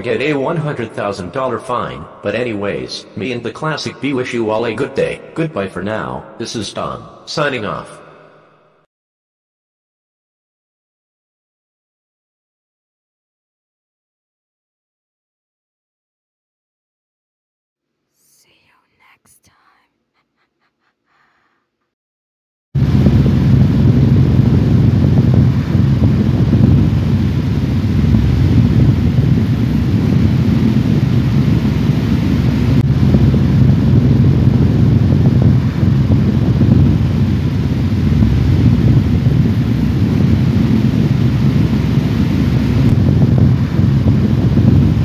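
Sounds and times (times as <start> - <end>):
loud low rumble with hiss: 22.8 - 45.0.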